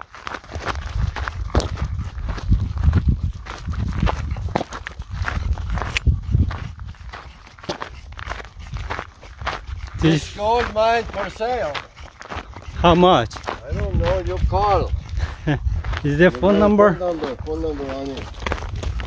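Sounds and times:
footsteps crunching on gravel: 0.0 - 19.0.

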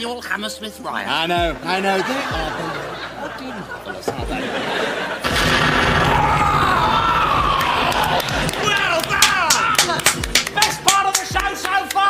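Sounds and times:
crowd noise: 1.1 - 12.0
petrol bomb bang: 5.2 - 6.6.

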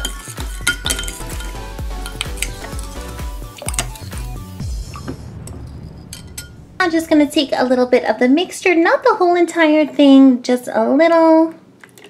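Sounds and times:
spoon clinking against glass bowl: 0.0 - 4.2
music: 0.0 - 7.7.

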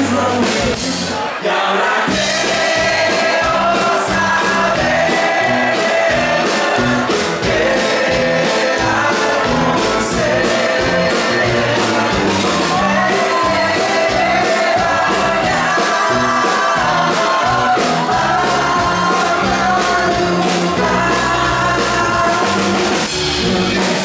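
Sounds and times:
drums steady beat: 0.0 - 1.2, 2.0 - 24.0
acoustic guitar: 0.0 - 24.0
man singing lead vocals: 0.0 - 24.0.

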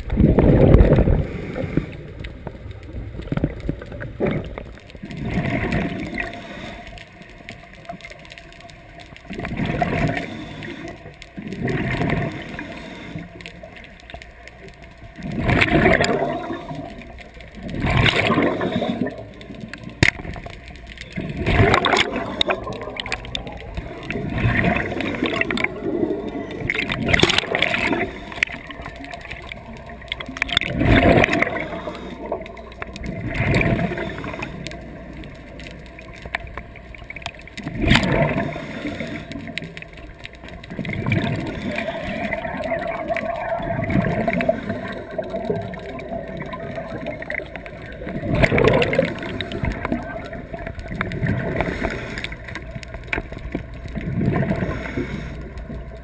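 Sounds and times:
underwater gurgling and rushing: 0.0 - 56.0.

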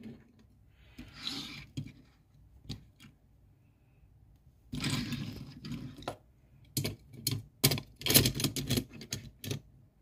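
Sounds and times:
toy car wheels rolling on table: 1.0 - 2.8, 4.7 - 6.2.

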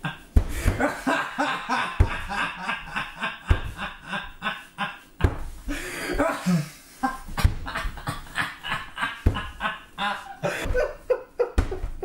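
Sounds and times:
person laughing in bursts: 0.0 - 12.0.

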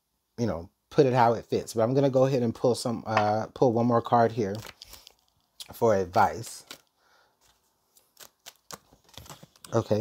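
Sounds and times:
cards shuffled by hand: 4.5 - 10.0.

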